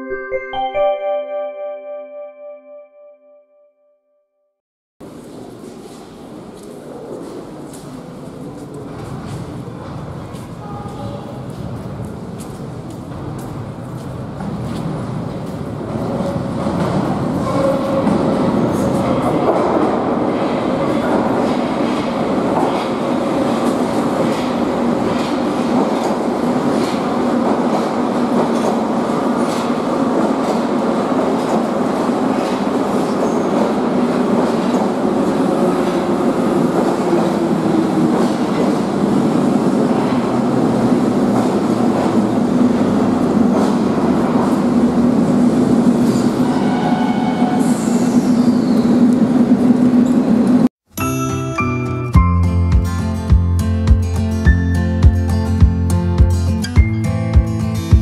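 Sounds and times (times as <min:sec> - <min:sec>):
metro train rolling rumble: 0:05.0 - 0:50.7.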